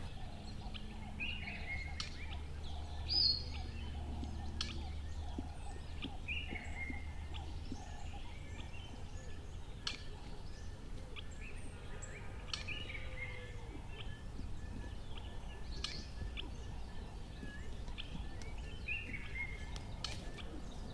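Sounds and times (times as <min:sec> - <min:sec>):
birds calling: 0:00.0 - 0:20.9
low steady hum: 0:00.0 - 0:20.9.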